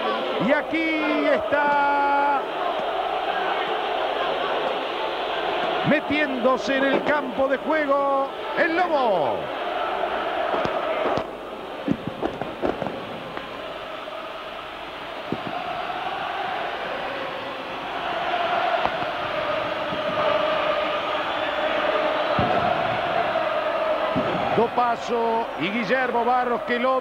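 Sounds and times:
stadium crowd chanting and singing: 0.0 - 27.0
sharp bangs: 10.4 - 14.2, 18.1 - 24.7.

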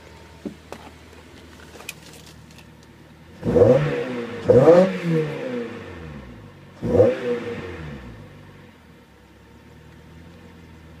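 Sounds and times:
car engine revving then idling: 2.6 - 11.0.

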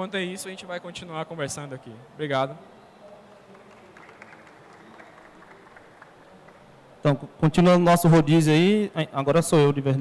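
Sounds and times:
low room noise: 0.0 - 10.0
audience clapping: 3.3 - 7.0.

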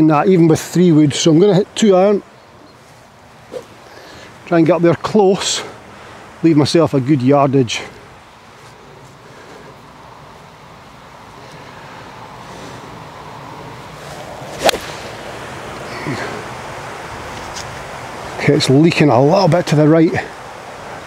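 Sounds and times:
outdoor hiss: 0.0 - 21.0
golf club striking ball: 3.5 - 3.7, 14.4 - 15.3.

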